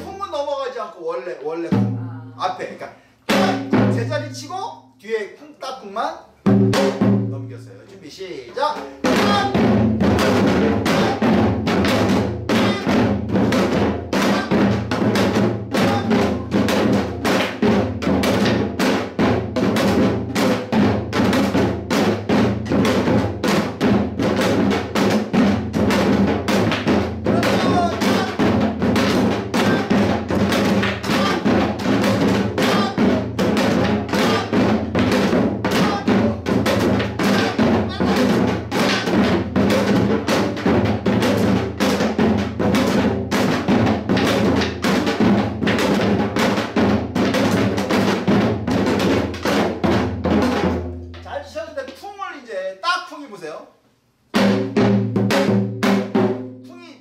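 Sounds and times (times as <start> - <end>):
hourglass drum fast rhythm: 8.7 - 52.0.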